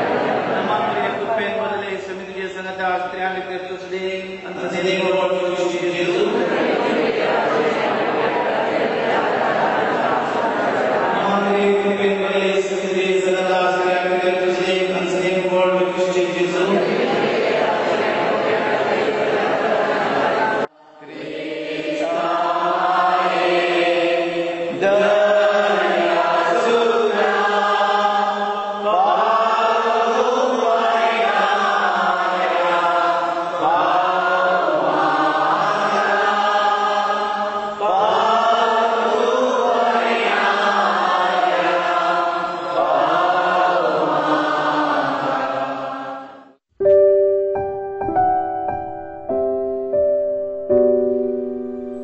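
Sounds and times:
congregation singing a hymn: 0.0 - 46.6.

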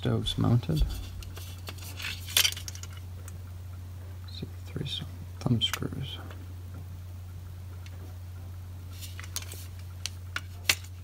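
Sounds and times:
metal clinks and handling: 0.9 - 3.0.

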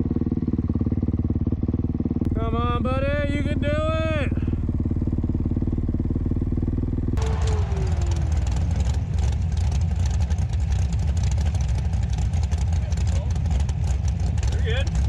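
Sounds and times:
dirt bike engine running: 0.0 - 15.0.

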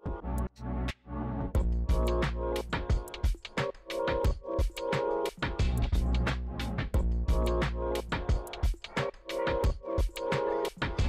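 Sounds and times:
deep bass music: 0.1 - 3.5, 5.5 - 8.8.

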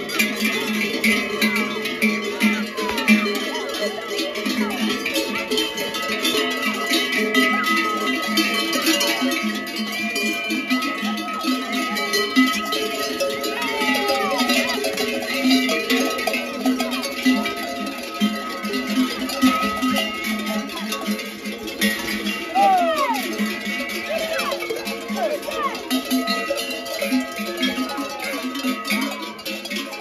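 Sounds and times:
cowbells clanking: 0.0 - 30.0.

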